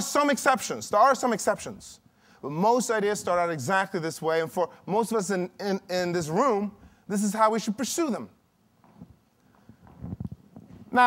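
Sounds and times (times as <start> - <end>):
footsteps on a stage: 8.8 - 11.0.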